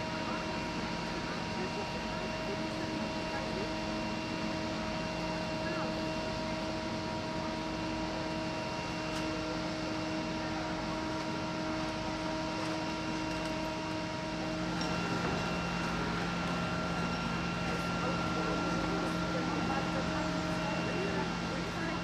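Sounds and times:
engine droning: 0.0 - 22.0.

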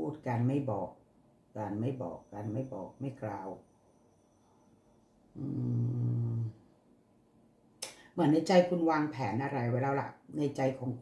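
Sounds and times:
person humming: 5.4 - 6.6.

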